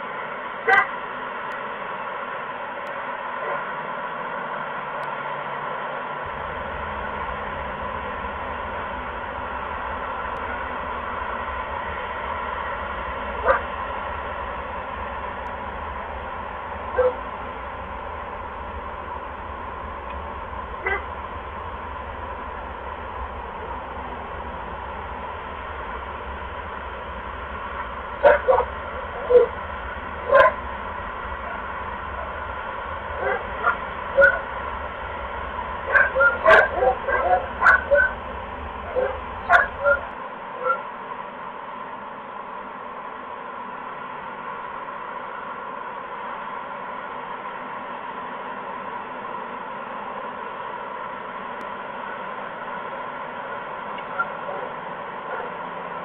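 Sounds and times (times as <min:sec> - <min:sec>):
steady hiss and hum: 0:00.0 - 0:56.0.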